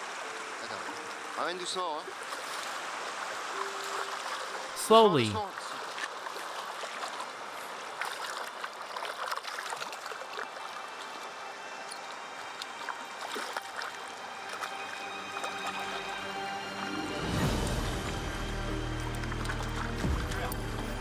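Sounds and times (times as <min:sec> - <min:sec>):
river water trickling over stones: 0:00.0 - 0:21.0
small water splashes: 0:00.0 - 0:21.0.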